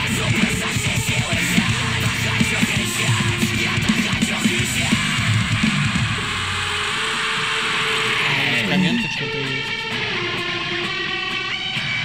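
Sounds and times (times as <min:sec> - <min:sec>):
distorted electric guitars: 0:00.0 - 0:12.0
drumming: 0:00.0 - 0:12.0.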